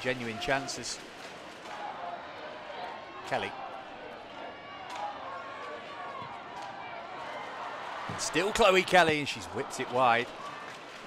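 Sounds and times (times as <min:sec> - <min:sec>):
distant voices and shouts: 0:00.0 - 0:10.8
crowd hubbub: 0:00.0 - 0:11.0.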